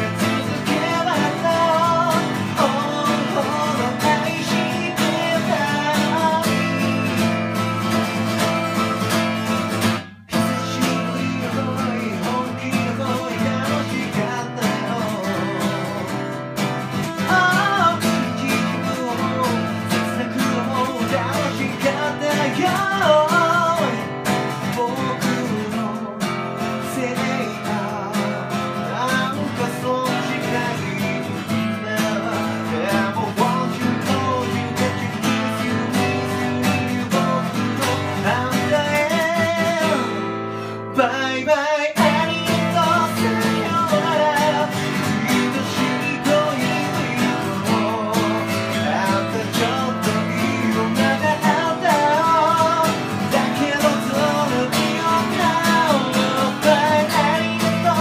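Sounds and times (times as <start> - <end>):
acoustic guitar strumming: 0.0 - 58.0
man singing: 0.0 - 58.0.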